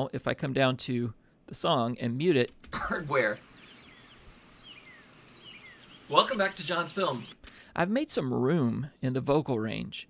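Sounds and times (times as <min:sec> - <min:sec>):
faint birdsong: 0:02.8 - 0:07.6
running water hiss: 0:03.4 - 0:07.3.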